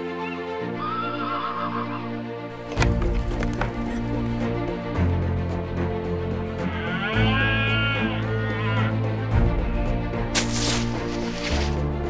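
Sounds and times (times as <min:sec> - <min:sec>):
deer stag roaring: 0:06.6 - 0:09.0.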